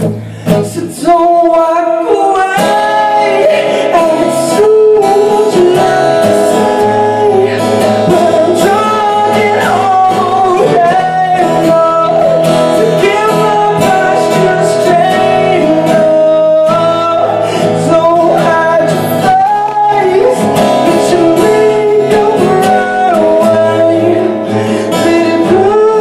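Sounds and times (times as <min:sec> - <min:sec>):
acoustic guitar: 0:00.0 - 0:26.0
man singing slow melody: 0:00.0 - 0:26.0.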